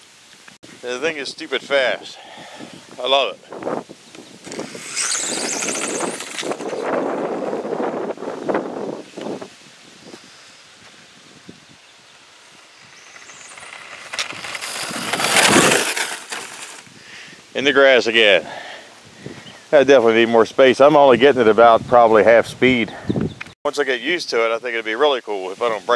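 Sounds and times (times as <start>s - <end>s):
tyre noise on pavement: 3.5s - 17.0s
electric motor whine: 4.4s - 7.7s, 12.1s - 16.8s.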